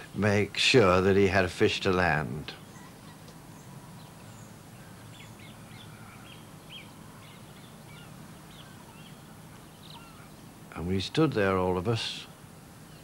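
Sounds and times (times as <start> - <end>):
faint bird chirps: 2.5 - 10.7.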